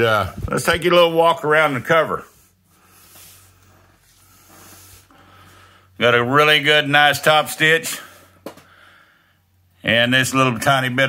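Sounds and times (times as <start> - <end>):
faint breathing: 2.2 - 6.0, 7.9 - 9.8.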